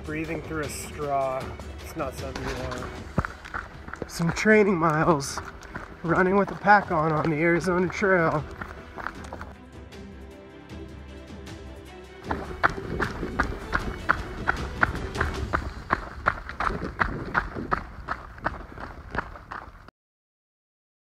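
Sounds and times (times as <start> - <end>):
music: 0.0 - 19.1
running footsteps on dirt: 1.8 - 9.6, 12.2 - 19.9.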